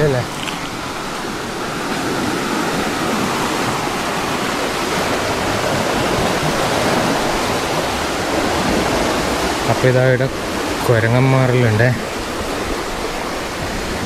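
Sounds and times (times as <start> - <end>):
water rushing through canal: 0.0 - 14.0.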